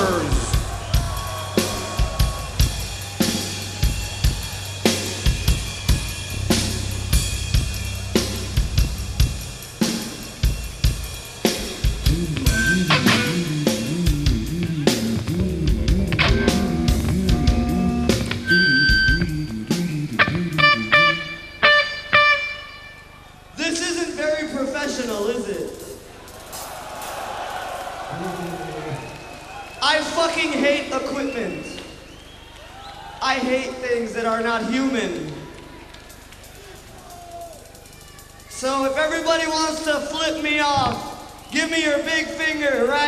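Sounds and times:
bass guitar: 0.0 - 11.1, 11.8 - 22.8
drum kit playing: 0.0 - 22.5
plucked guitar notes ringing: 12.4 - 23.1.

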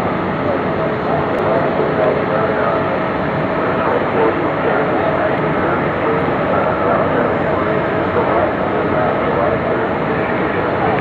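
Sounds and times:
crowd voices talking: 0.0 - 11.0
loud steady background noise: 0.0 - 11.0.

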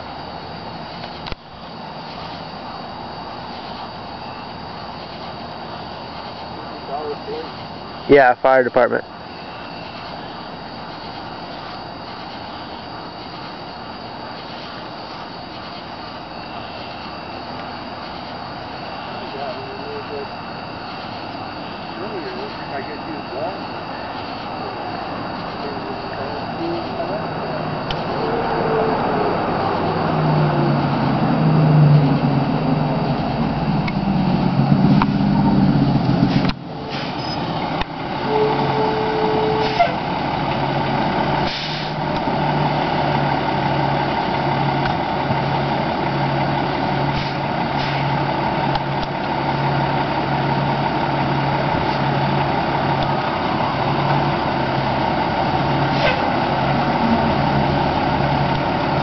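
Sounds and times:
diesel engine pulsing hum: 0.0 - 59.0
short hiss: 36.3 - 37.4, 41.4 - 42.0.

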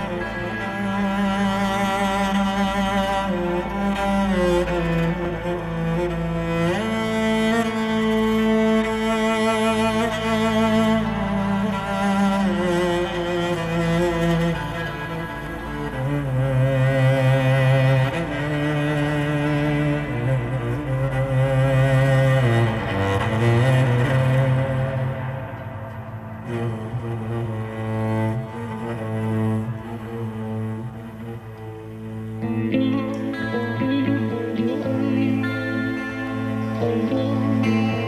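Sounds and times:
cello bowed melody: 0.0 - 38.0.

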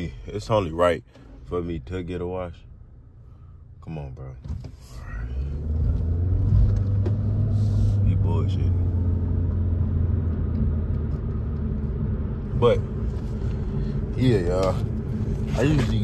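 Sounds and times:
car engine and road rumble: 0.0 - 16.0.

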